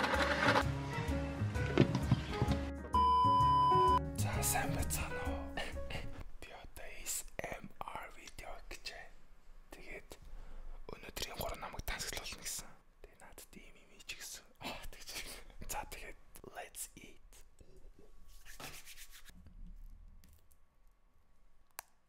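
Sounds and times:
man whispering: 4.2 - 19.3.

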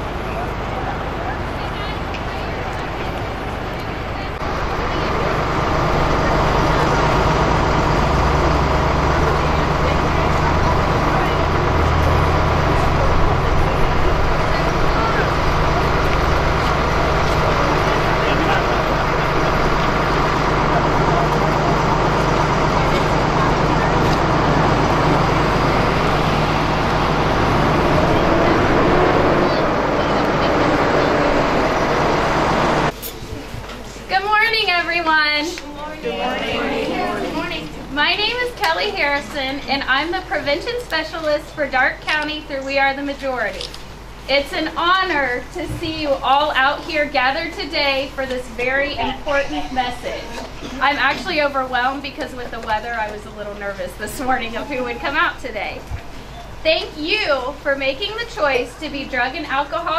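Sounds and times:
vehicle engine running: 0.0 - 33.0
crowd chatter: 0.0 - 59.9.

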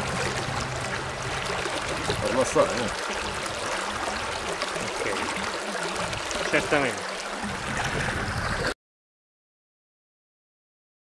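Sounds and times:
stream flowing over stones: 0.0 - 8.8.

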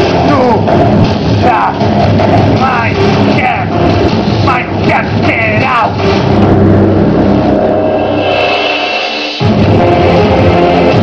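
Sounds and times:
steady low drone: 0.0 - 11.0
rising bending synth sweeps: 6.0 - 11.0
held synth chord: 6.2 - 11.0.

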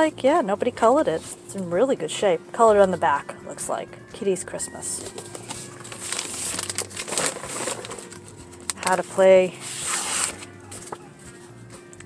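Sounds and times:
paper and plastic rustling: 4.8 - 11.5.

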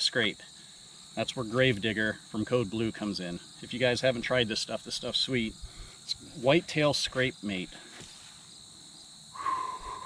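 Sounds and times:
crickets chirring: 0.0 - 10.0
person sniffing through nose: 9.4 - 10.0.

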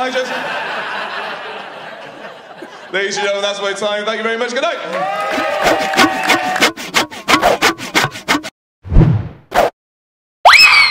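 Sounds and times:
quick scratching strokes: 5.3 - 8.5.

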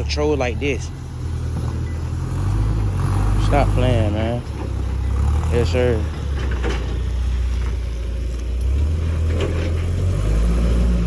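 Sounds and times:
forklift engine rumbling: 0.0 - 11.0.

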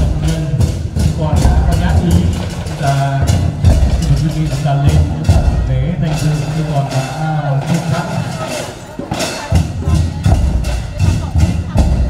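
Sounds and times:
saxophone marching band: 0.0 - 12.0
steady drumbeat: 0.0 - 12.0.

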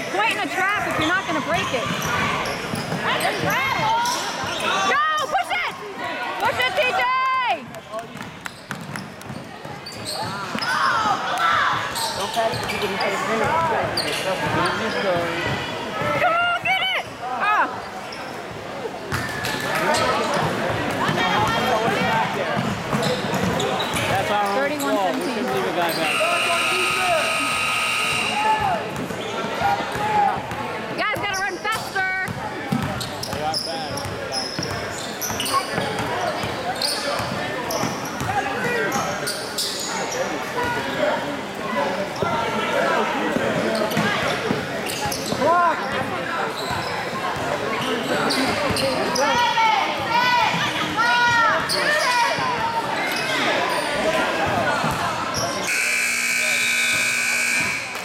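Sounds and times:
spectators talking: 0.0 - 58.0
steady horn tone: 55.7 - 58.0.

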